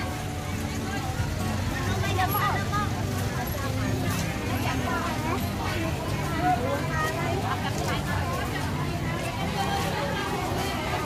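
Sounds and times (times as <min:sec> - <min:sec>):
market voices talking: 0:00.0 - 0:11.0.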